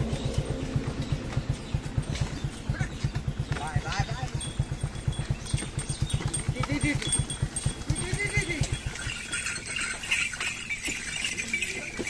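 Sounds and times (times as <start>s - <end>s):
low steady thumping: 0.0s - 12.0s
voices: 0.0s - 12.0s.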